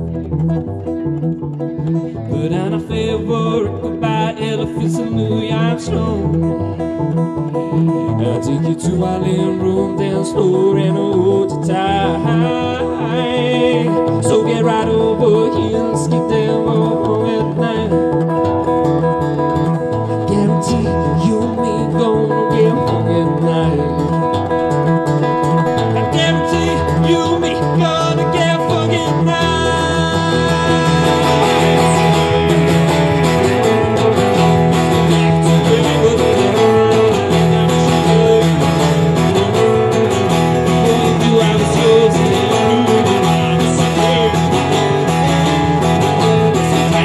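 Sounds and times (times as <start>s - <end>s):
fingerstyle acoustic guitar: 0.0s - 47.0s.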